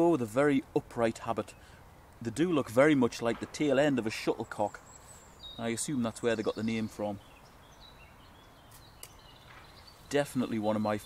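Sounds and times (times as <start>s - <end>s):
faint bird chirps: 4.2s - 11.0s.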